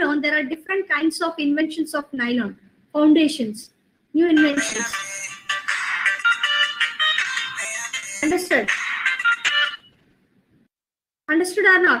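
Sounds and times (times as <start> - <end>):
electronic phone ringtone: 4.4 - 10.0.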